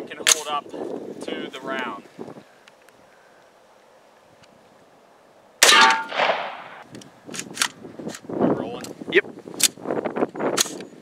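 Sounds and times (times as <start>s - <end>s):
rifle round hitting steel plate: 5.6s - 6.8s
metallic ring: 5.7s - 6.2s.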